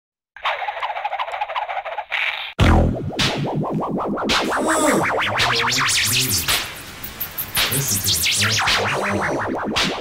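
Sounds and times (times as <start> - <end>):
crackly radio static: 5.3 - 9.6.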